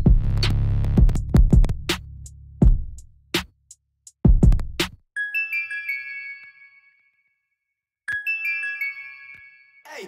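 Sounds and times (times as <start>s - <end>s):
bell-like synth melody: 5.2s - 7.4s, 8.1s - 10.0s.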